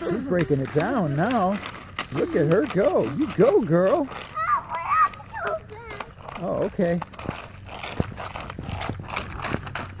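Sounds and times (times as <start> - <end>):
roller skates rolling on asphalt: 0.0 - 10.0
skates clacking on road: 0.0 - 10.0.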